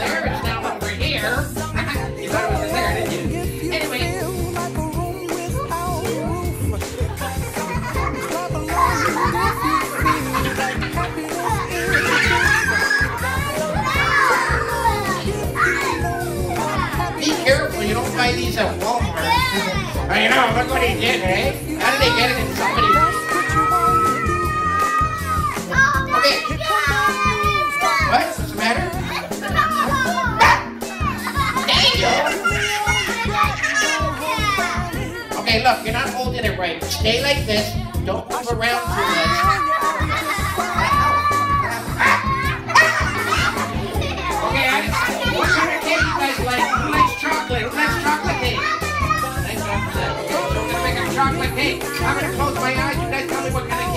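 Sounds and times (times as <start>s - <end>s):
background music: 0.0s - 53.9s
young children shouting: 7.7s - 17.7s, 18.9s - 20.0s, 21.8s - 35.4s, 38.6s - 52.7s.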